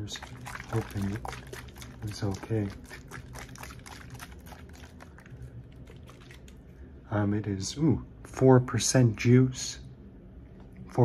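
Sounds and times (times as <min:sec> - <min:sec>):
juice sloshing in shaken can: 0:00.0 - 0:06.8.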